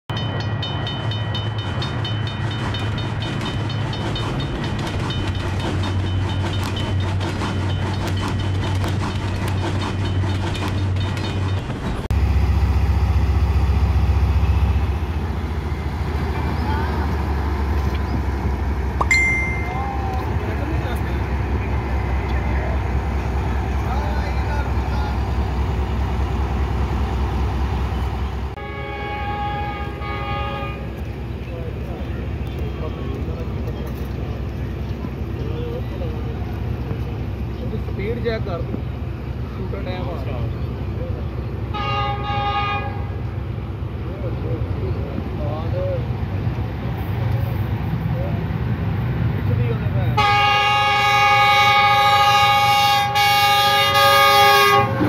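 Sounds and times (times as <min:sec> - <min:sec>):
diesel locomotive engine rumble: 0:00.1 - 0:55.0
rhythmic bell-like signal: 0:19.1 - 0:20.0.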